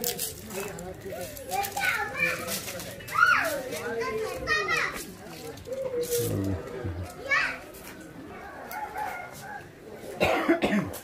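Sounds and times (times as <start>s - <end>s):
people's voices: 0.0s - 11.0s
short coughs: 10.2s - 11.0s.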